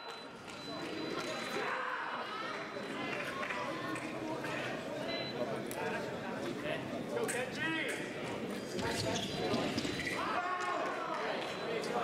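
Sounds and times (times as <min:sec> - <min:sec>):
indistinct chatter in echoing hall: 0:00.0 - 0:12.0.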